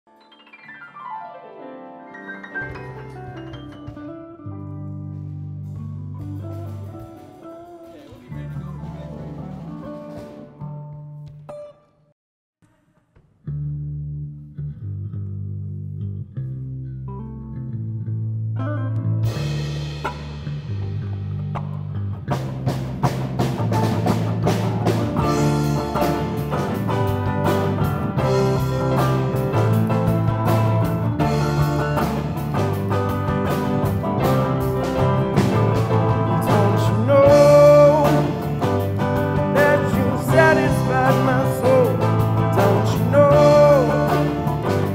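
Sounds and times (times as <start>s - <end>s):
rock band playing: 0.2s - 10.9s, 18.6s - 44.9s
drums steady beat: 19.3s - 44.9s
person singing: 35.5s - 44.9s.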